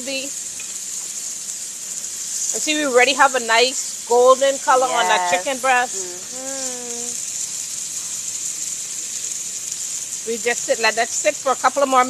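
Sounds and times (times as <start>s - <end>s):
food sizzling in a grill pan: 0.0s - 12.0s.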